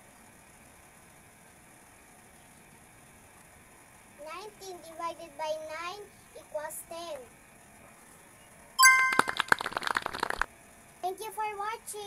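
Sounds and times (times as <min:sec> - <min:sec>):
brief chime: 0:08.8 - 0:09.5
rapid sharp clicks: 0:09.1 - 0:10.5.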